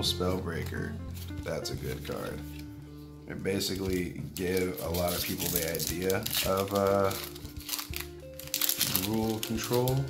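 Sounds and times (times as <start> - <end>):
cards and wrapper crinkling: 0.0 - 2.7, 3.6 - 10.0
faint background music: 0.0 - 10.0.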